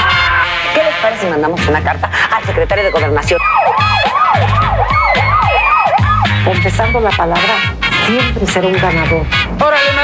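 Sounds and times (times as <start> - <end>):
siren yelping: 2.5 - 7.8.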